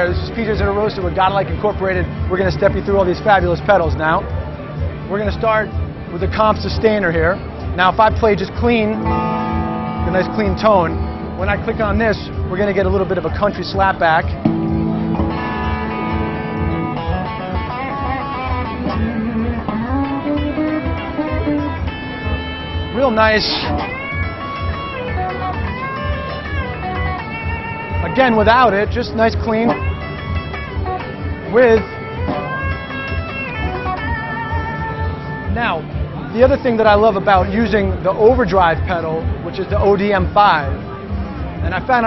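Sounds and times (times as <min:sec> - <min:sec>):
clean electric guitar licks: 0:14.4 - 0:28.4, 0:29.1 - 0:35.6.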